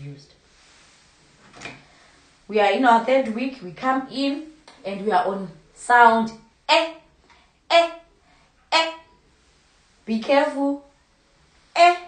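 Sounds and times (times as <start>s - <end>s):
woman saying a vowel sound: 2.5s - 7.1s, 7.7s - 8.1s, 8.7s - 9.2s, 10.1s - 10.9s, 11.8s - 12.0s.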